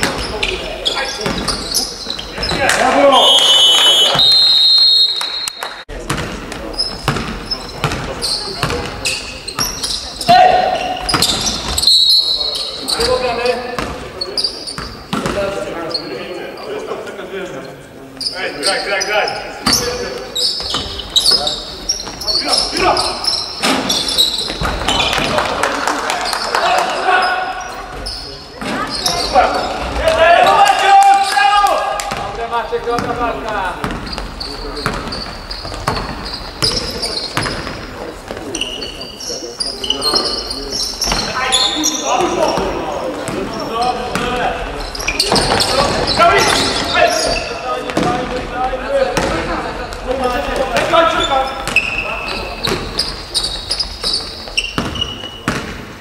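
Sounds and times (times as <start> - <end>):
basketball bouncing on wooden court: 1.2 - 1.6, 6.0 - 9.0, 13.8 - 14.0, 32.0 - 33.2, 33.8 - 38.4, 44.1 - 44.4, 47.9 - 48.5, 49.2 - 49.5, 52.6 - 55.9
players calling out: 18.1 - 55.7.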